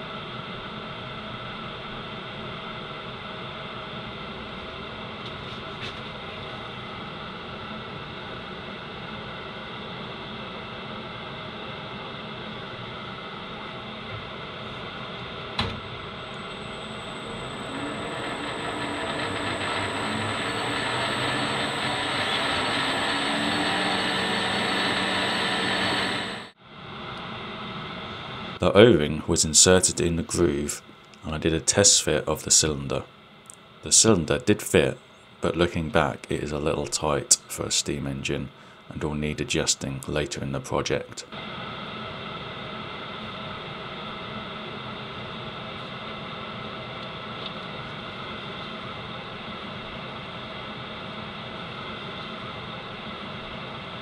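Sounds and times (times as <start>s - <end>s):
thin high whine: 14.4s - 33.2s
metal lathe motor humming: 16.2s - 26.6s.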